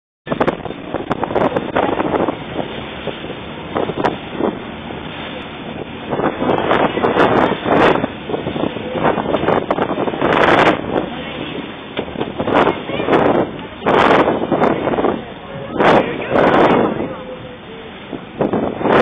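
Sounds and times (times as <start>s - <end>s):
water rushing along boat hull: 0.2s - 19.0s
wind buffeting microphone: 0.3s - 19.0s.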